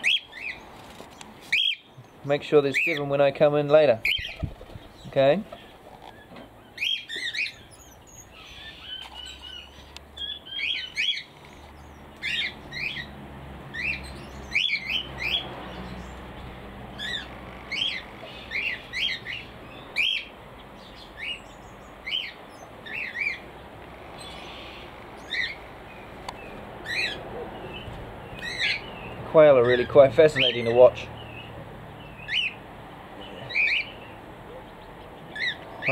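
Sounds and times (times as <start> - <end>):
small birds chirping: 0.0 - 35.9.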